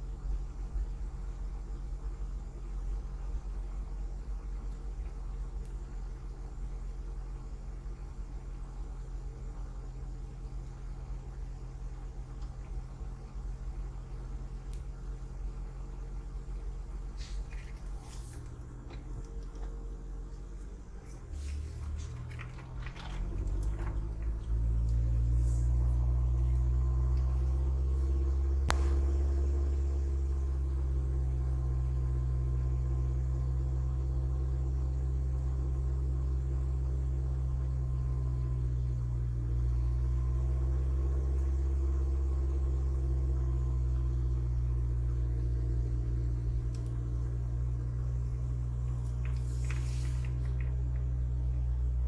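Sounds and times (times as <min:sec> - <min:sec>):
car engine and road drone: 0:00.0 - 0:52.0.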